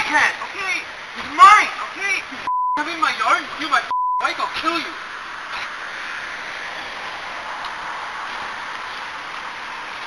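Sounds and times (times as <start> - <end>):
man shouting: 0.0 - 5.0
censor bleep: 3.9 - 4.2.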